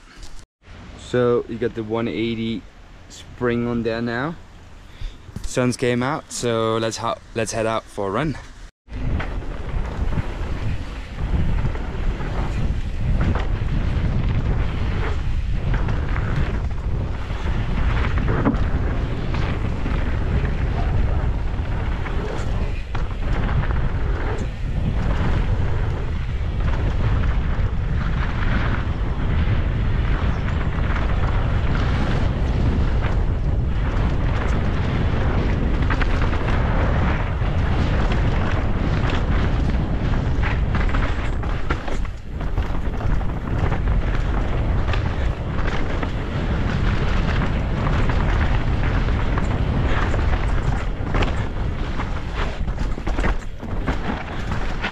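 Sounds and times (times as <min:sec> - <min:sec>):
knobby tyres on dirt: 0:00.0 - 0:54.9
wind buffeting microphone: 0:00.0 - 0:54.9
bike clattering over bumps: 0:08.9 - 0:54.9.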